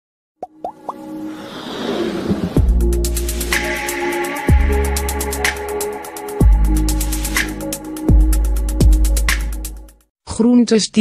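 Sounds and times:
quick rising plops: 0.4 - 3.0
whoosh with held tones: 1.2 - 4.2.

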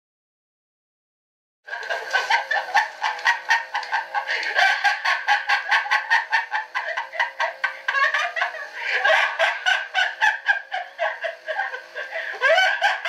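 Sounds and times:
person laughing rapidly: 1.7 - 13.0.

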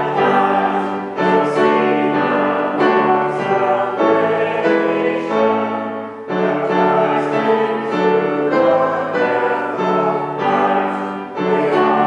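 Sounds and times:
choir singing held notes: 0.0 - 12.0
keyboard accompaniment: 0.0 - 12.0.

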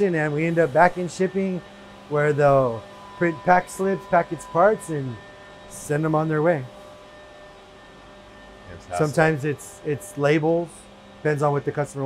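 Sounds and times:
faint constant tones: 0.0 - 12.0
machine shop hum: 0.0 - 12.0.

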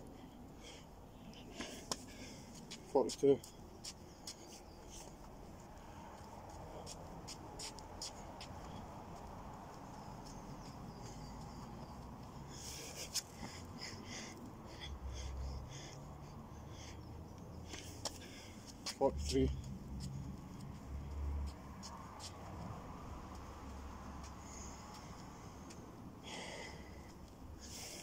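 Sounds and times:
man breathing hard: 0.0 - 2.9, 10.9 - 18.8, 24.2 - 28.0.

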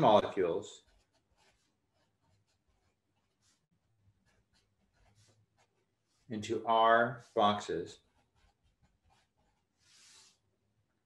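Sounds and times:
marker scratching on paper: 0.3 - 6.3, 7.2 - 10.4.

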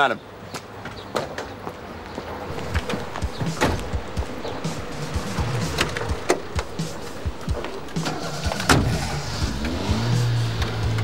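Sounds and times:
car door shutting: 2.5 - 11.0
car engine starting and revving: 2.5 - 11.0.

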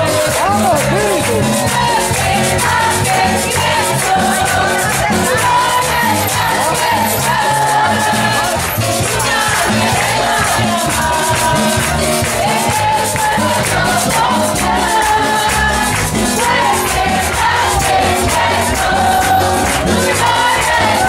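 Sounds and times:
congregation singing: 0.0 - 21.0
hand-clapping: 0.0 - 21.0
live band music: 0.0 - 21.0.

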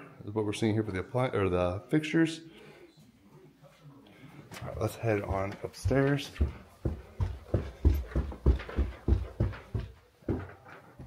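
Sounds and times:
footsteps on carpeted stairs: 4.6 - 11.0.

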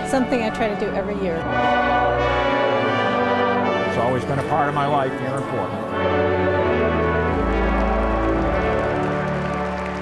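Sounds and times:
brass ensemble chord: 0.0 - 10.0
pipe organ chord: 0.0 - 10.0.

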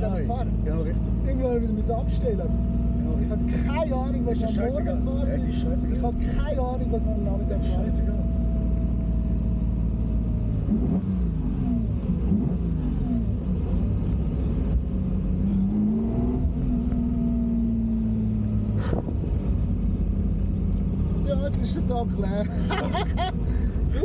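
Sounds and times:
car engine revving: 0.0 - 24.0.

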